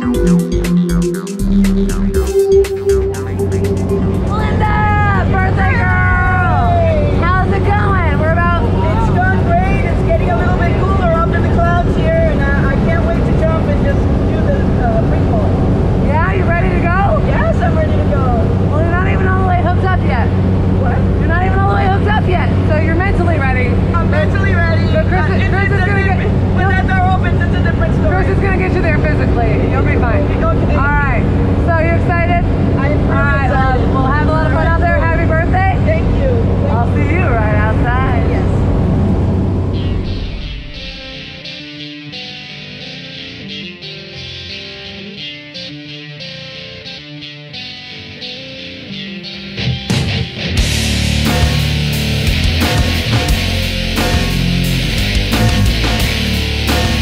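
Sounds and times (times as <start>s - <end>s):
propeller plane engine drone: 0.0s - 41.3s
voices talking: 2.1s - 38.8s.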